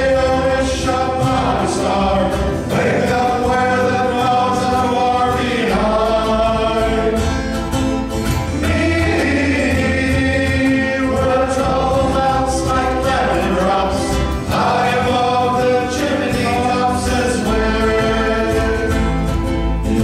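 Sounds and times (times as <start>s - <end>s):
men's choir singing a hymn: 0.0s - 7.8s, 8.4s - 20.0s.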